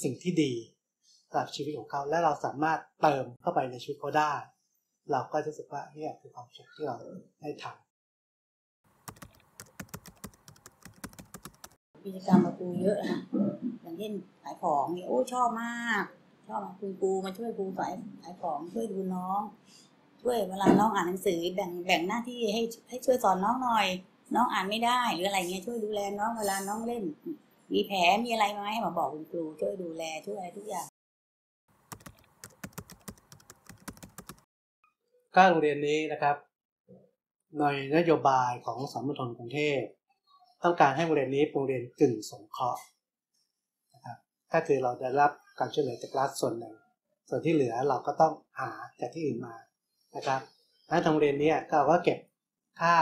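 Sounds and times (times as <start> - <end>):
keyboard typing clicks: 9.1 - 11.8, 31.9 - 34.4.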